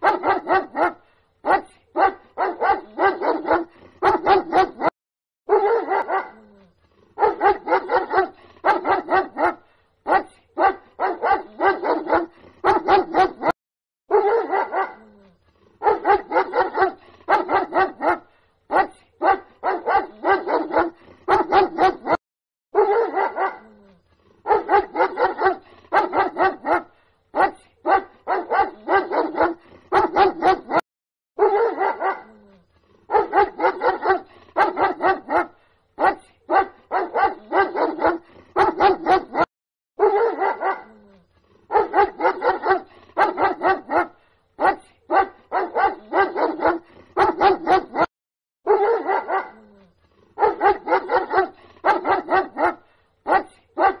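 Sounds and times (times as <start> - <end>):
dog barking: 0.0 - 4.9, 5.5 - 6.5, 7.2 - 15.2, 15.8 - 23.8, 24.4 - 30.8, 31.4 - 32.4, 33.1 - 41.0, 41.7 - 49.8, 50.4 - 54.0.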